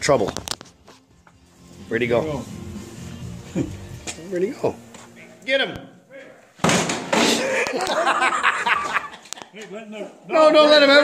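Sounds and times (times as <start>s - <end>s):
clattering and scuffling: 6.6s - 8.1s.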